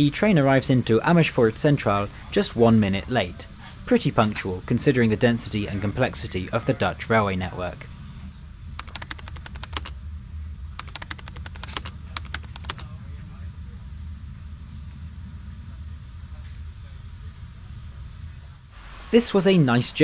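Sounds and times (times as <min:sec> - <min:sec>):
electric train rumbling: 0:00.0 - 0:20.0
rapid clicking: 0:08.8 - 0:10.0, 0:10.8 - 0:12.9.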